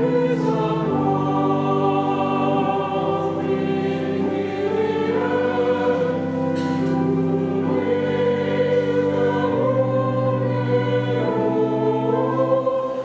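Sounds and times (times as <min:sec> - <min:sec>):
church choir singing: 0:00.0 - 0:13.0.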